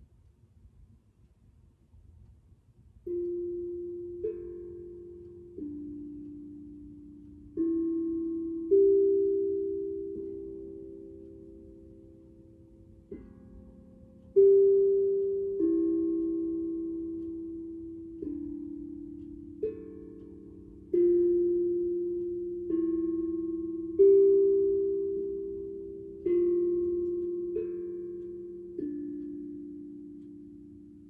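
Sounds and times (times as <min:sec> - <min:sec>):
steel tongue drum notes: 0:03.0 - 0:31.0.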